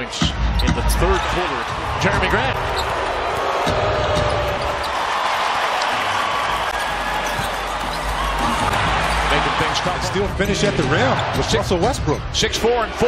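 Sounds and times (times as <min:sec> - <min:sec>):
crowd hubbub: 0:01.6 - 0:11.4.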